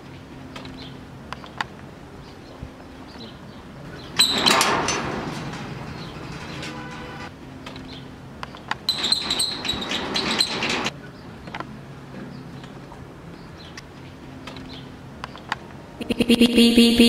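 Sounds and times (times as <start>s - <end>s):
metal gate scraping and rattling: 3.1s - 11.0s.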